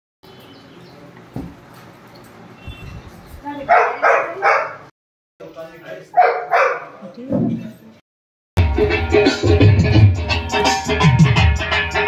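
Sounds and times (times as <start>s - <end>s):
dog barking: 3.7s - 4.9s, 6.1s - 7.0s.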